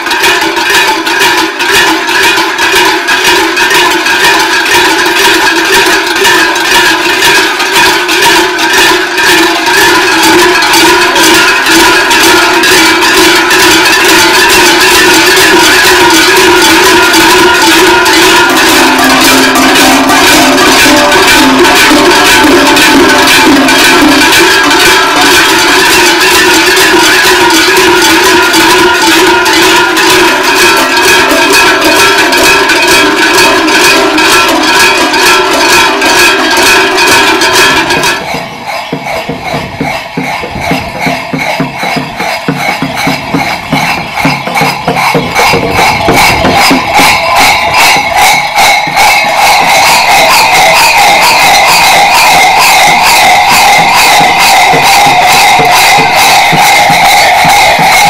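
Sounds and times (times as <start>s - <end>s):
cowbells clanging: 0.0s - 58.0s
lower bell tone: 16.4s - 25.6s, 31.6s - 58.0s.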